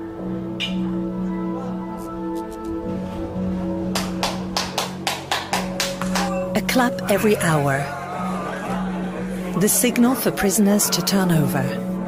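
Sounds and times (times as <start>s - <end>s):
background music: 0.0s - 12.0s
quick even hand claps: 4.0s - 6.4s.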